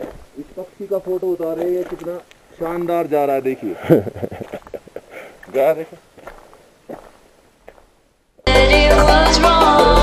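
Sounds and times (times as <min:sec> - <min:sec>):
footsteps on gravel: 0:00.0 - 0:03.5, 0:04.2 - 0:08.5.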